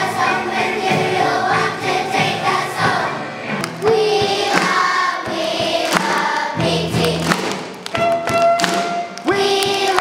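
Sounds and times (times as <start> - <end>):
children's choir singing: 0.0 - 7.7, 9.0 - 10.0
live band playing: 0.0 - 9.5.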